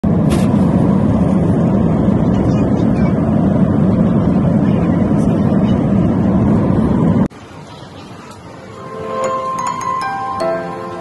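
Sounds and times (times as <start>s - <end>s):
jet airliner cabin noise: 0.0s - 11.0s.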